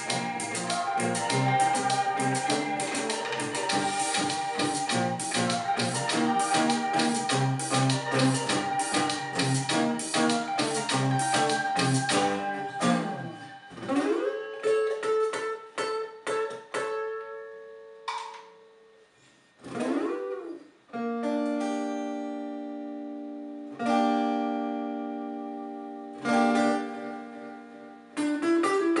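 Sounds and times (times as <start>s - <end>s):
electric guitar strumming chords: 0.0s - 18.9s, 19.6s - 29.0s.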